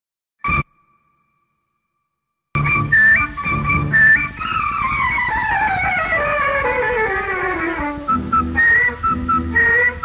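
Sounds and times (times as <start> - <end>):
high ping tone: 0.4 - 2.7.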